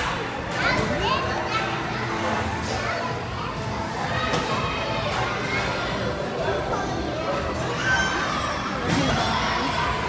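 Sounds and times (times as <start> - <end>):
children playing and calling out: 0.1 - 10.0.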